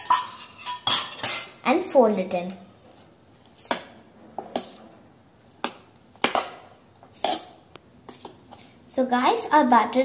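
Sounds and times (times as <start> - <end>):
kitchenware clinking against pot: 0.0 - 1.6.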